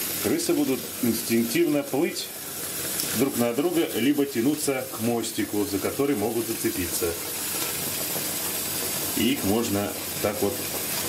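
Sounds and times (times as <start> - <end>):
tap water running into bathtub: 0.0 - 11.0.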